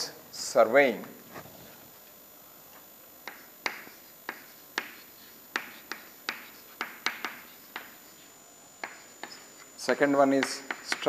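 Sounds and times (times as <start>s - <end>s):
chalk tapping on a chalkboard: 3.2s - 9.7s, 10.3s - 11.0s.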